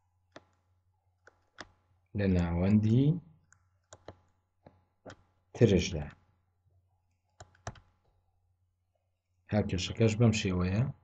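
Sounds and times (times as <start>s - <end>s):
person speaking: 9.5s - 11.0s.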